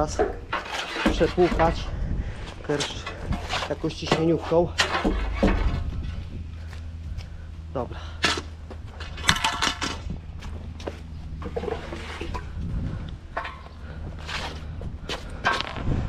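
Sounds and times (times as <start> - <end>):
manhole cover clanking and scraping: 0.0 - 6.4, 8.0 - 10.2, 11.4 - 12.6, 13.3 - 14.6, 15.3 - 15.8
truck engine humming: 1.8 - 16.0
metal rattling clatter: 2.6 - 6.5, 8.3 - 10.2.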